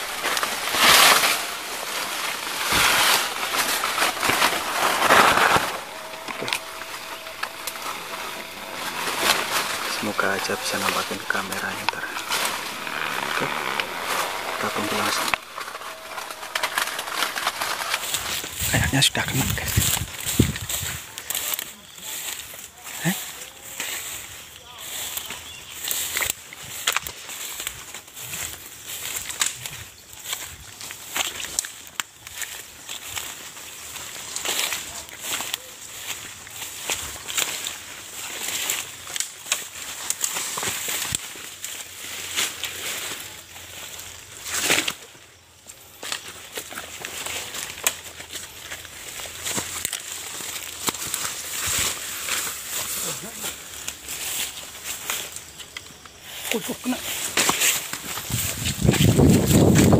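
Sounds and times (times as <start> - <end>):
footsteps through undergrowth: 0.0 - 59.9
leaves and twigs crackling: 0.0 - 59.9.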